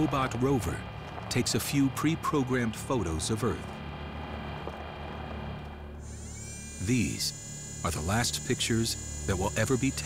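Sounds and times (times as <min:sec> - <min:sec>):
low motor hum: 0:00.0 - 0:10.0
high electric whine: 0:03.2 - 0:10.0.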